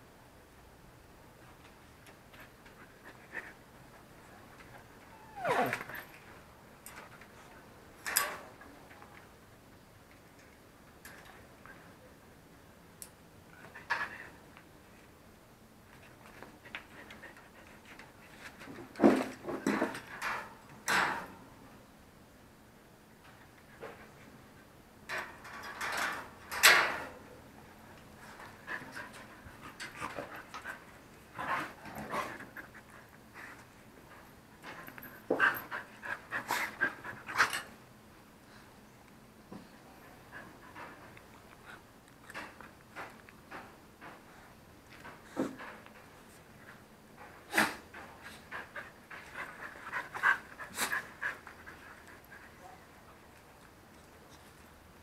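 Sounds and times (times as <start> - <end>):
cage door latch clattering: 25.1 - 27.1
dogs panting: 47.9 - 52.8.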